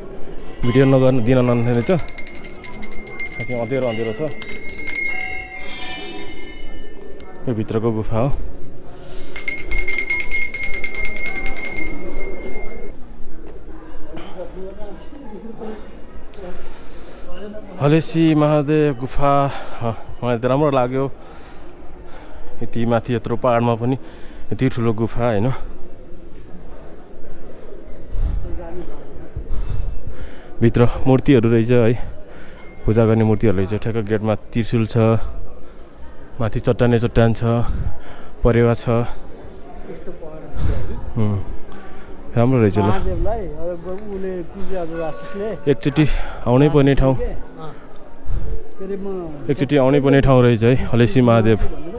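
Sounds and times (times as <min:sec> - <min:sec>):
man talking: 0:00.6 - 0:02.2, 0:03.4 - 0:04.6
soft high-pitched ringing: 0:00.6 - 0:08.2, 0:09.3 - 0:12.9
metal temple bells ringing: 0:00.6 - 0:08.3, 0:09.2 - 0:12.9, 0:32.6 - 0:33.9
man breathing hard: 0:08.8 - 0:09.6, 0:15.6 - 0:17.4, 0:29.4 - 0:30.6.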